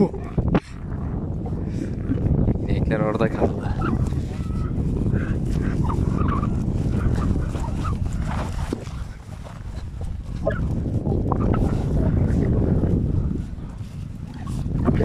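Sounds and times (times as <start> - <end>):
steady low rumble: 0.0 - 15.0
high animal calls and chirps: 3.6 - 8.0.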